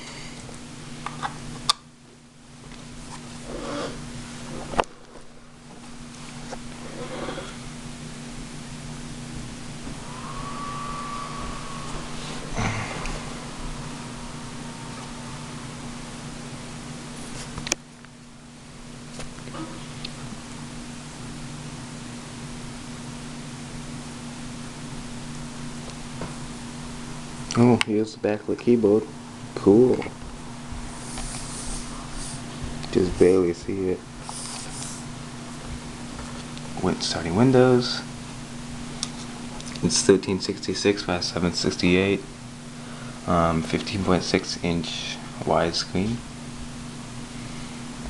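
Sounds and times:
faint steady hum: 0.0 - 48.0
laptop cooling fan hiss: 0.0 - 48.0.

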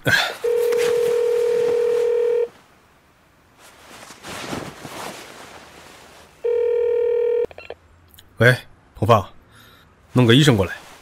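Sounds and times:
steady telephone line tone: 0.4 - 2.6, 6.4 - 7.8.

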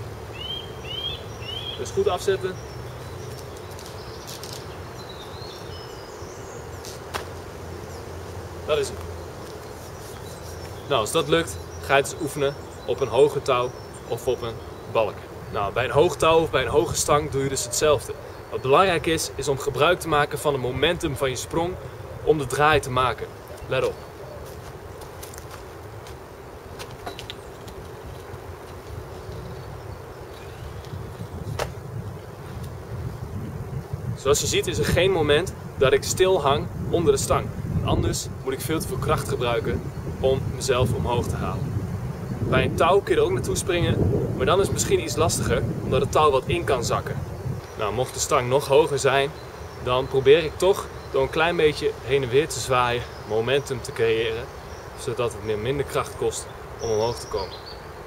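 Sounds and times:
outdoor background noise: 0.0 - 58.0
faint bird chirps: 0.3 - 7.0, 8.7 - 15.8
light knocks of rope landing: 6.8 - 7.5, 30.3 - 31.8.

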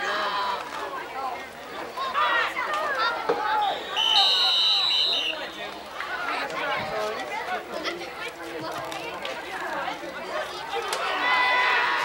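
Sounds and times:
spectators chattering: 0.0 - 12.0
referee's whistle blast: 3.7 - 5.6.

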